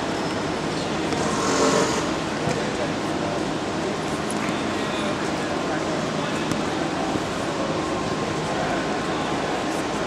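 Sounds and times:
continuous hum: 0.0s - 10.0s.

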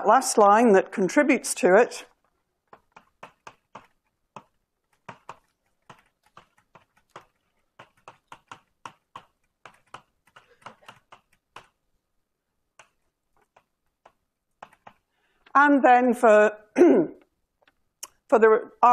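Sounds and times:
taps and clicks of writing: 2.1s - 11.8s, 12.7s - 15.6s.

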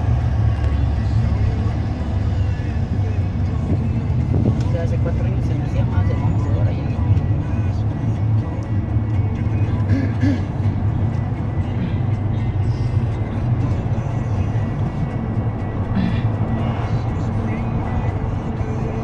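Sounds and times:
background music: 0.0s - 19.0s
car engine and tyre rumble: 0.0s - 19.0s.

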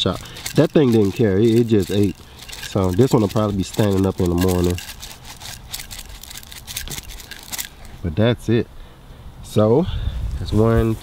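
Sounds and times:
pepper flakes pattering on mulch: 0.0s - 7.9s.

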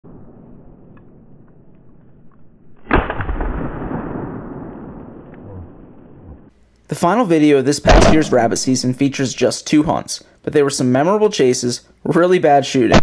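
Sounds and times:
gunshot with rolling echo: 2.7s - 6.1s, 7.9s - 9.0s.

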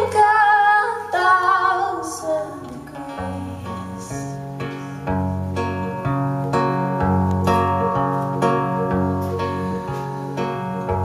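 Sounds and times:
held low notes: 2.6s - 11.0s
acoustic guitar strumming: 2.9s - 11.0s.

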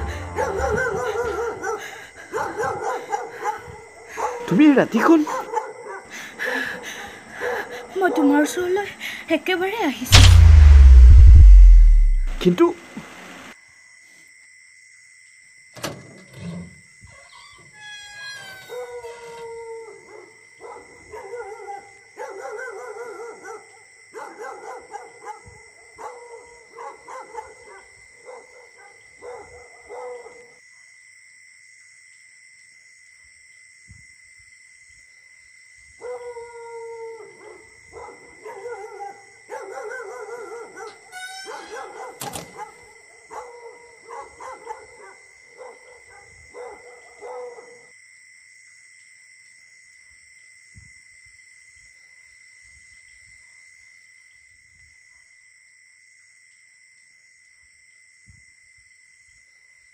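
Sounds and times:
dog howling and barking: 0.1s - 4.5s, 18.6s - 30.5s, 36.0s - 47.9s
high-pitched whine: 10.1s - 12.5s.

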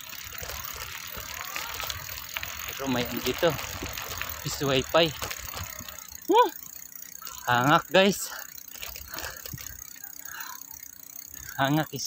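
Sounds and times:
bicycle rattling on dirt road: 0.0s - 12.0s.

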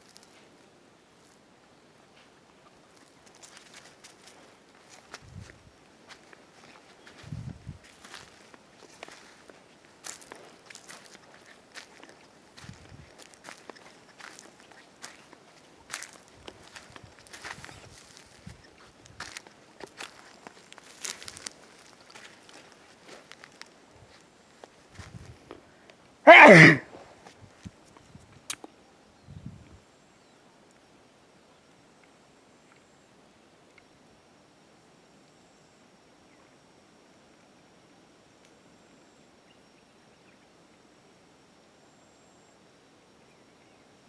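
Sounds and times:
footsteps crunching over dry twigs: 0.0s - 0.5s, 2.8s - 25.7s.

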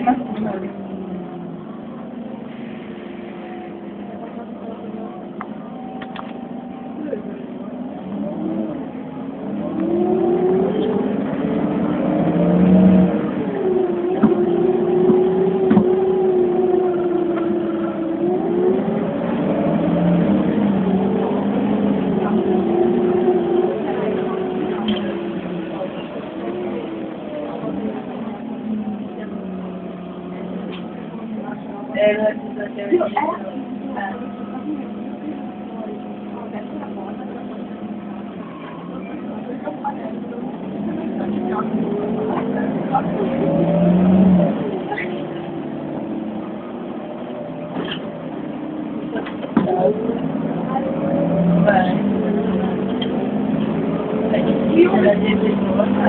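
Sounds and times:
bus engine accelerating: 0.0s - 56.0s.

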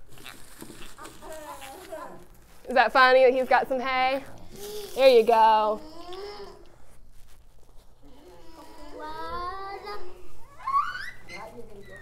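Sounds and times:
crinkly paper rustling: 0.0s - 9.7s.

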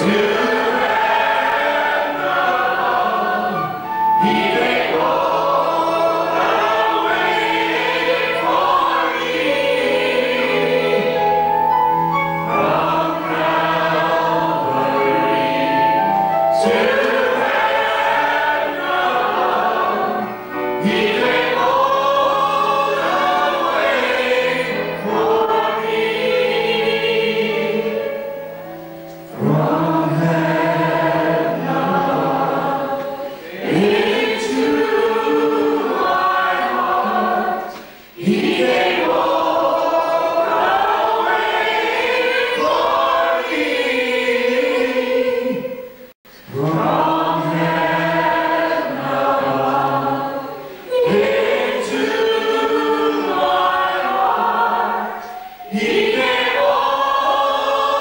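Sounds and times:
choir singing a hymn: 0.0s - 58.0s.

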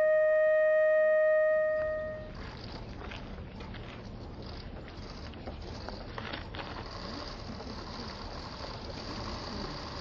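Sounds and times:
flute long note: 0.0s - 2.3s
outdoor background noise: 0.0s - 10.0s.

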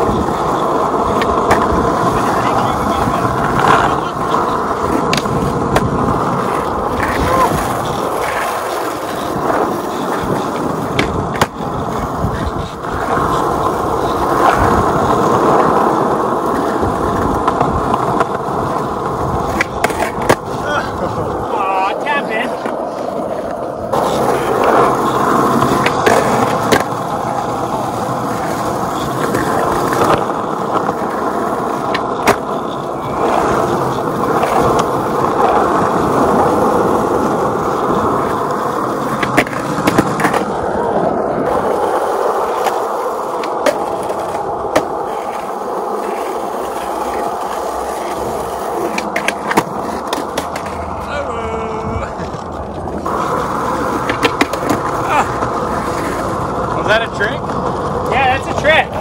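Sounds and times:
skateboard clacks: 0.0s - 59.0s
skateboard wheels rolling on concrete: 0.0s - 59.0s.

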